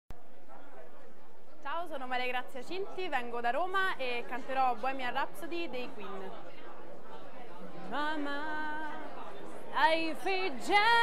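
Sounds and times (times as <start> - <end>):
faint background voices: 0.2 - 11.0.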